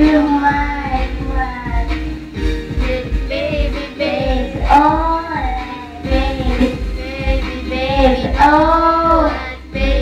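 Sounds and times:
person singing: 0.0s - 2.1s, 2.8s - 10.0s
backing music with steady beat: 0.0s - 10.0s.

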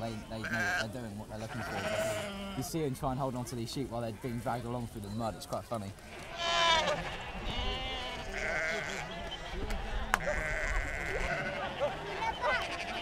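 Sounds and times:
sheep bleating: 0.2s - 2.7s, 6.1s - 9.2s, 10.2s - 13.0s.

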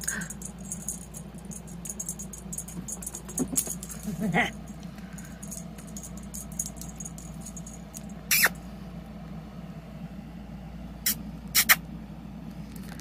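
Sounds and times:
sharp rustling or rattling: 0.0s - 8.4s
steady low hum: 0.0s - 13.0s.

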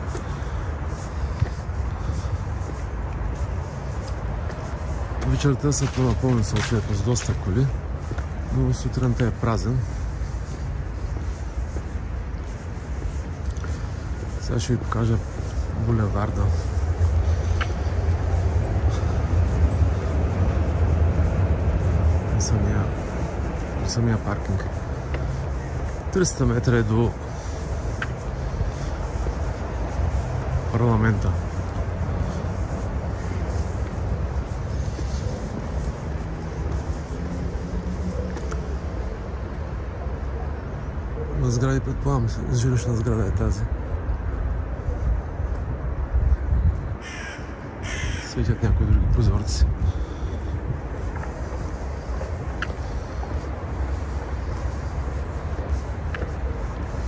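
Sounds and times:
deep low city drone: 0.0s - 57.0s
low rumble of street traffic: 0.0s - 57.0s
harsh bird calls: 47.0s - 48.4s.

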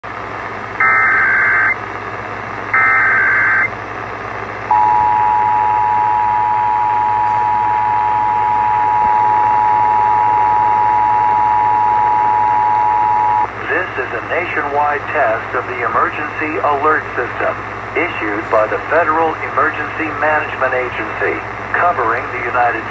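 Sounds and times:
two-tone attention signal: 0.8s - 1.8s, 2.8s - 3.7s, 4.7s - 13.5s
radio static hiss: 12.9s - 22.9s.

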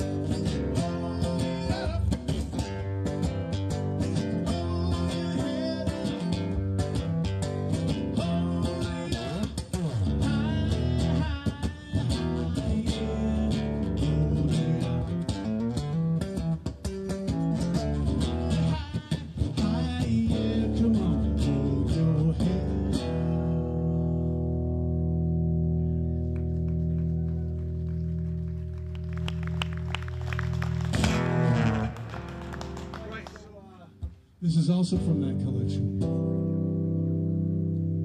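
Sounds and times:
strummed acoustic guitar chords: 0.0s - 26.2s, 30.9s - 38.0s.

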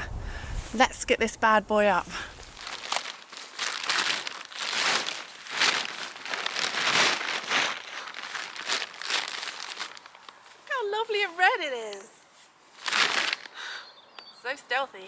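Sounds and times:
tent fabric crinkling: 2.2s - 13.6s.

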